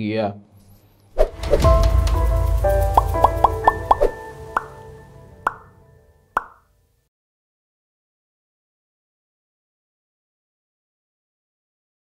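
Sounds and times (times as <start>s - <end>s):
low bass: 1.3s - 6.1s
rising pitched notes jingle: 1.4s - 6.4s.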